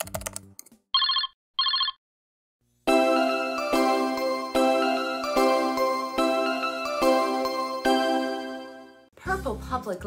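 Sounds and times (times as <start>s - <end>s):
telephone ringing: 1.0s - 2.0s.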